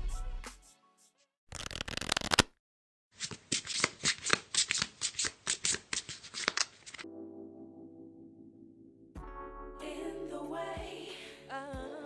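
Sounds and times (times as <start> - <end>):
playing cards shuffled and snapped: 1.5 - 2.6, 3.2 - 7.0.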